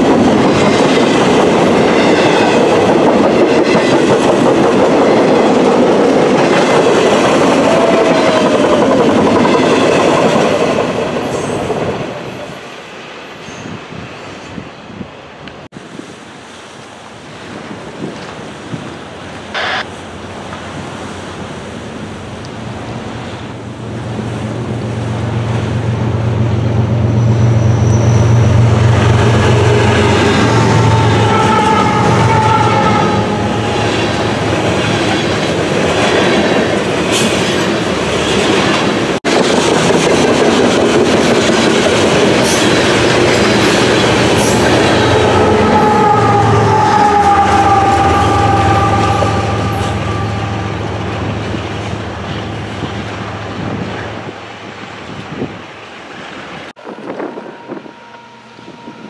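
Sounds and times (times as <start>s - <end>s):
train wheels on rails: 0.0s - 59.0s
wheel squeal: 27.2s - 28.6s.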